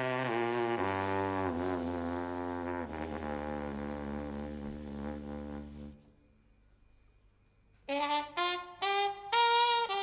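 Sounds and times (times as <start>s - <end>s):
trumpet long note: 0.0s - 6.0s, 7.9s - 10.0s.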